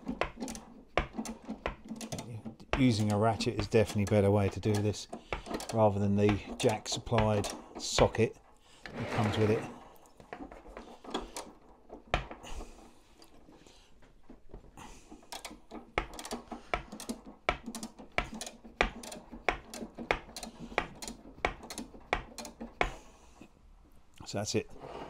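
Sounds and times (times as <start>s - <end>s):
socket ratchet clicking: 0.0s - 7.6s, 15.2s - 23.0s.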